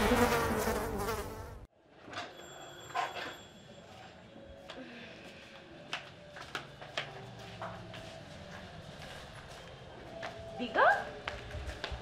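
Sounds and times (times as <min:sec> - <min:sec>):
housefly buzzing: 0:00.0 - 0:01.7.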